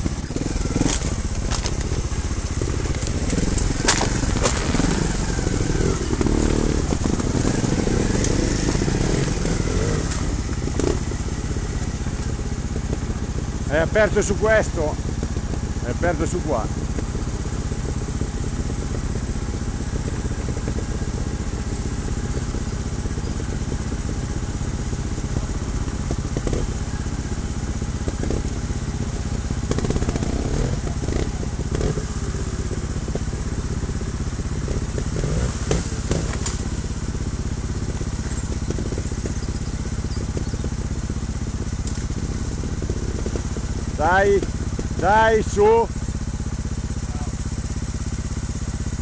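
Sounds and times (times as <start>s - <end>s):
motorcycle engine idling: 0.0s - 49.0s
knocks and clatters on rocks: 2.9s - 5.0s.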